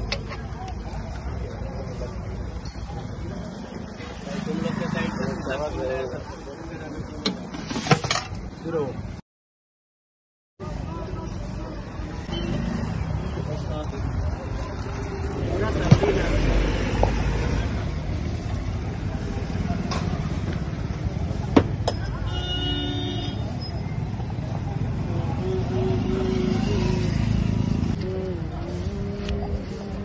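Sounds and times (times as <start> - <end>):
street traffic noise: 0.0 - 9.2, 10.6 - 30.0
background voices: 24.5 - 30.0.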